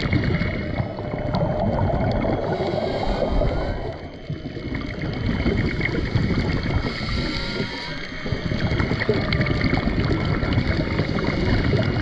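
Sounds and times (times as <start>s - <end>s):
underwater crackle and rush: 0.0s - 12.0s
distant whale song: 0.4s - 12.0s.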